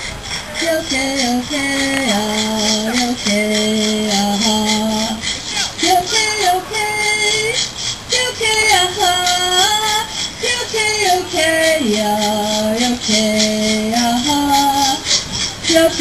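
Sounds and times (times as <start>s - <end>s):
steady beat: 0.0s - 16.0s
voices singing: 0.0s - 16.0s.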